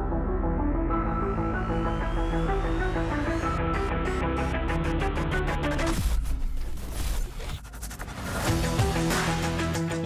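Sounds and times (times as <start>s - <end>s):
background music: 0.0s - 6.4s, 8.4s - 10.0s.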